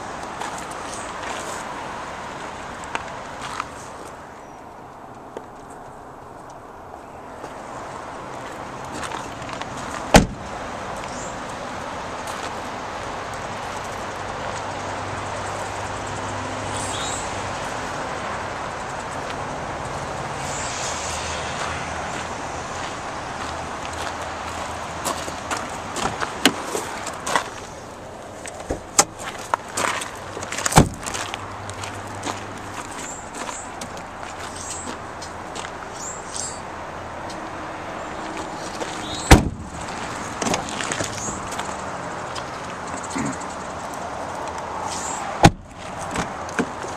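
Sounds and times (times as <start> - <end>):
outdoor noise: 0.0 - 46.9
car door shutting: 10.1 - 10.5, 30.7 - 31.1, 39.2 - 39.8, 45.4 - 46.7
car panels clicking and knocking: 10.1 - 10.5, 30.7 - 31.1, 39.3 - 39.8, 45.4 - 46.8.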